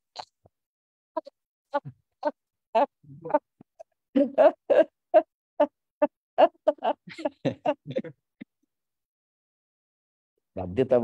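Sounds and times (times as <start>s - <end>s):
man laughing: 6.4s - 8.2s.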